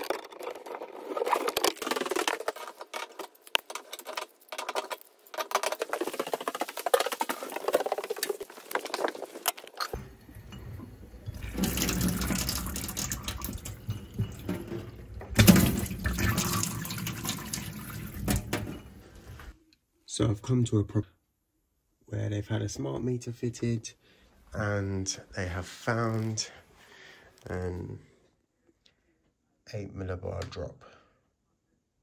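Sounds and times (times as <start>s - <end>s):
water running into steel sink: 9.9s - 19.4s.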